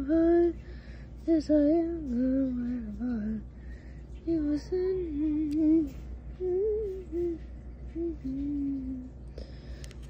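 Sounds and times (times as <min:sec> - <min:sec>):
woman humming: 0:04.3 - 0:09.2.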